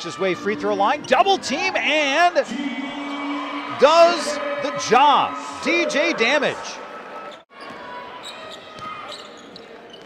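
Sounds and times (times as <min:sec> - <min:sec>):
murmur of crowd voices: 0:00.0 - 0:10.0.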